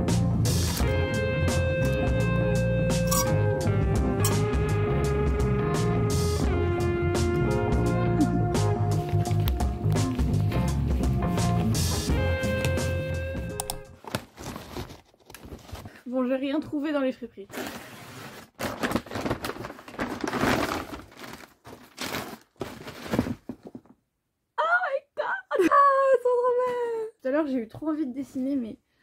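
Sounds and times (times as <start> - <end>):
music with steady beat: 0.0 - 14.0.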